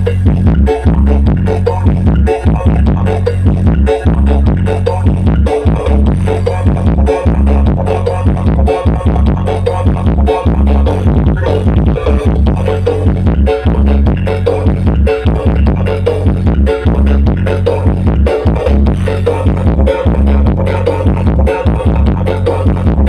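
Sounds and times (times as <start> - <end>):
electronic dance music: 0.0 - 23.0.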